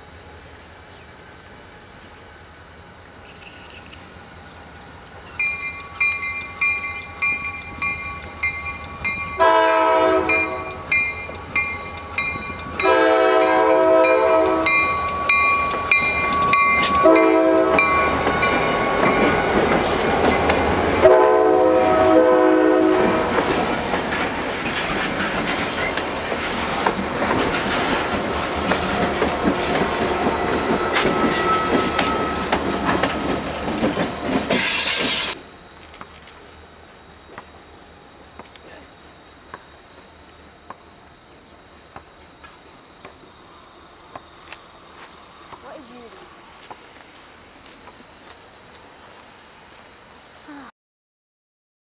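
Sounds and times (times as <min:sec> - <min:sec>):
locomotive engine and rail noise: 0:00.0 - 0:50.7
crossing bell ringing: 0:05.3 - 0:20.5, 0:30.5 - 0:32.6
locomotive horn: 0:09.4 - 0:10.8, 0:12.8 - 0:14.9, 0:17.0 - 0:18.0, 0:21.0 - 0:23.4.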